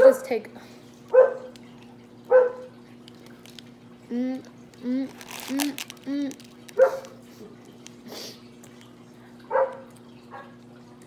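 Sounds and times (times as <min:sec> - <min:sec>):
dog barking: 0:01.1 - 0:01.5, 0:02.3 - 0:02.7, 0:06.8 - 0:07.1, 0:09.5 - 0:10.6.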